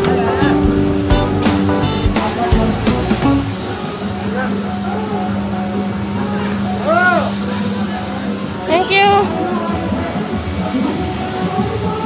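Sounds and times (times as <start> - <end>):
noisy crowd: 0.0 - 12.0.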